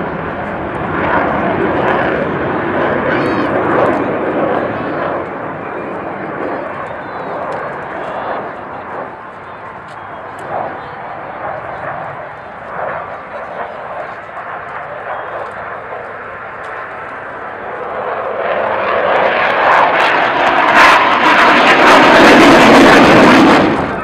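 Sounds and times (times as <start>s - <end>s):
crowd voices: 0.0s - 24.0s
jet engine noise: 0.0s - 24.0s.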